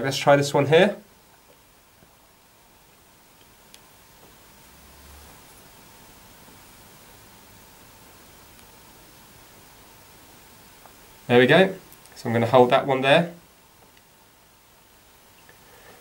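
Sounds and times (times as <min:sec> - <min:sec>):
steady hiss: 0:00.0 - 0:16.0.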